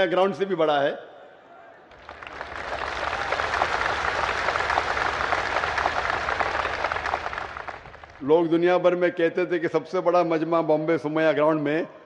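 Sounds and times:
large crowd applauding: 1.9s - 8.2s.

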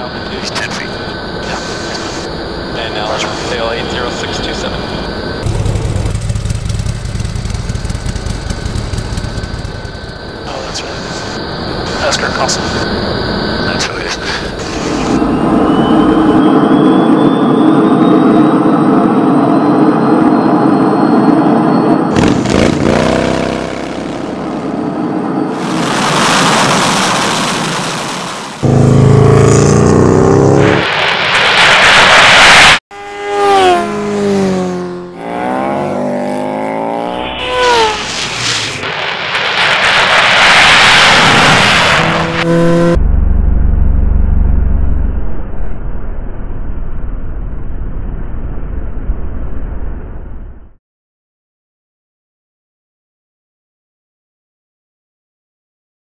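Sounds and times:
jet engine roar: 0.0s - 35.8s, 36.4s - 43.9s
jet engine revving: 0.0s - 45.2s.

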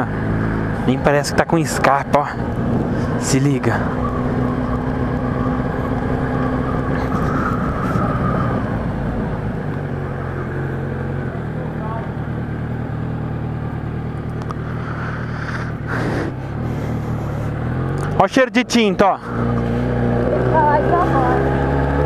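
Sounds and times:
motorcycle engine pulling away: 0.0s - 22.0s.

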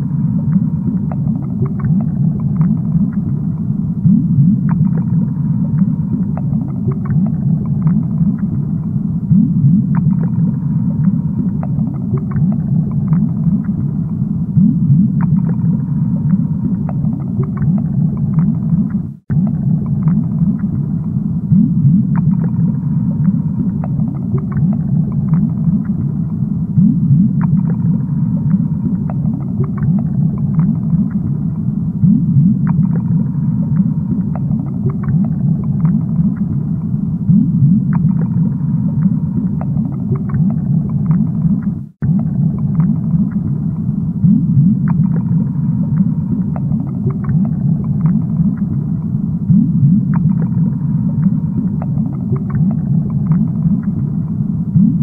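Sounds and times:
fish tank underwater rumble: 0.0s - 55.0s
water bubbling: 0.0s - 55.0s
small clicks and pops: 23.2s - 26.4s, 28.5s - 31.3s, 32.6s - 37.0s, 39.0s - 43.9s, 44.8s - 49.2s, 50.1s - 54.9s.

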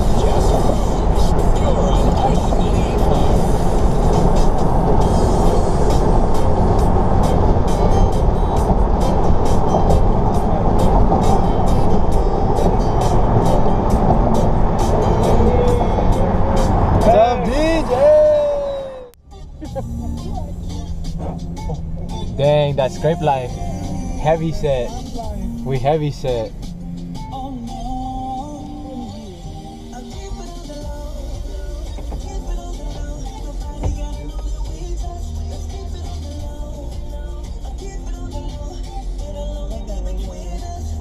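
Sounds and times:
music with steady beat: 0.0s - 17.8s, 19.2s - 41.0s
wind through open car window: 0.0s - 19.1s
road noise: 0.0s - 41.0s
person speaking: 17.0s - 19.8s, 22.3s - 26.5s.

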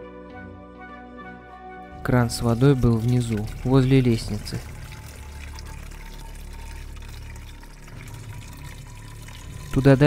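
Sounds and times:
low steady drone: 1.9s - 10.0s
tap water filling plastic bottle: 2.0s - 10.0s.

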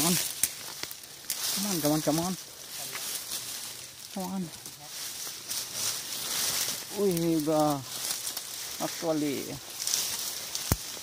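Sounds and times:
leaves and brush rustling: 0.0s - 11.0s.

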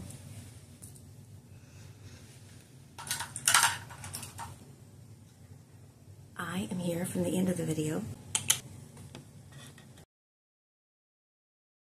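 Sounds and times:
faint room hum: 0.0s - 10.1s.

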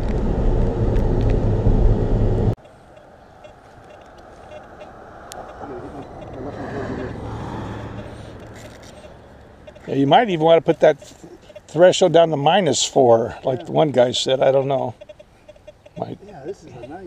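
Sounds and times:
car cabin road and engine rumble: 0.0s - 17.0s
quiet outdoor background: 0.0s - 17.0s.

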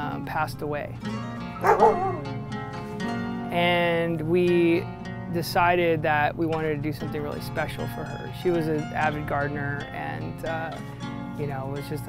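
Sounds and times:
background music: 0.0s - 12.0s
dog barking: 1.6s - 2.3s.

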